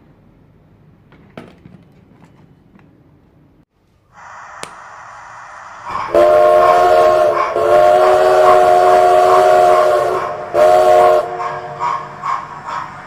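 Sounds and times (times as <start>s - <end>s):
steam locomotive whistle: 4.2s - 13.0s
locomotive chuffing: 4.8s - 13.0s.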